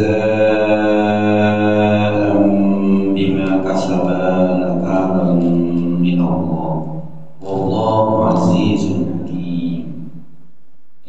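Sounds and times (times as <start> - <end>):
man chanting a recitation: 0.0 - 10.0.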